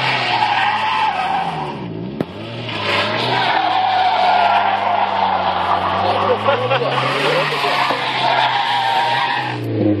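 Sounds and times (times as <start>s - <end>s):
car engine at steady revs: 1.5s - 3.4s, 5.6s - 8.2s
tyres squealing: 2.7s - 9.6s.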